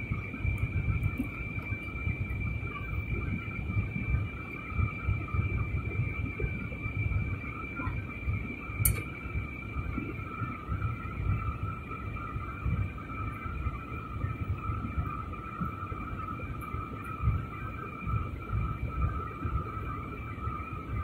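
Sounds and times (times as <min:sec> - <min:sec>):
jet engine whine: 0:00.0 - 0:21.0.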